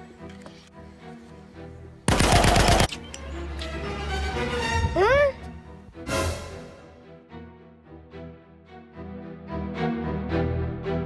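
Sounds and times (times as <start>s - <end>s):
background music: 0.0s - 11.0s
automatic gunfire burst: 2.1s - 2.9s.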